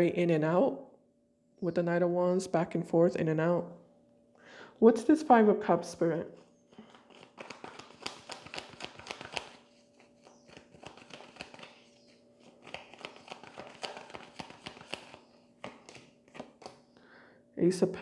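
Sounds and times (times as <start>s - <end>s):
cards being shuffled: 6.7s - 16.9s
cards laid on cloth: 6.7s - 16.9s.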